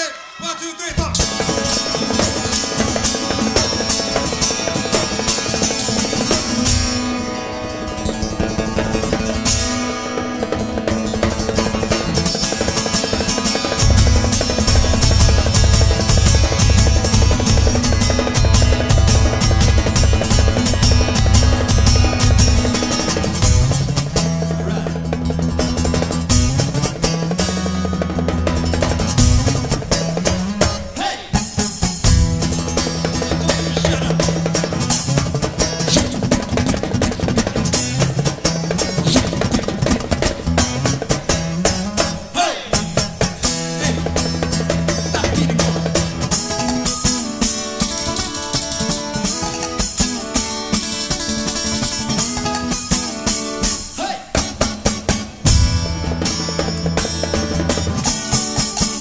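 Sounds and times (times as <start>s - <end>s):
busy drumming: 0.0s - 59.0s
acoustic guitar: 0.1s - 59.0s
upright bass notes: 13.8s - 47.4s.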